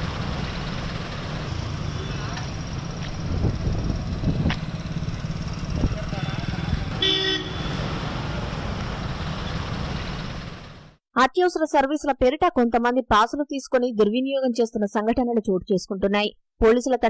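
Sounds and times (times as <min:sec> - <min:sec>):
street traffic rumble: 0:00.0 - 0:11.0
car horn toot: 0:06.9 - 0:07.9.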